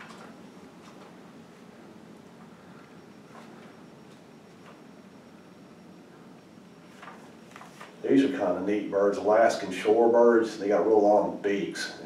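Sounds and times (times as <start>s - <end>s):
pages being turned: 6.9s - 8.0s.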